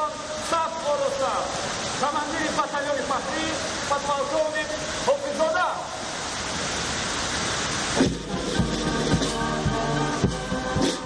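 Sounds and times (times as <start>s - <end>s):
falling water hissing: 0.0s - 11.0s.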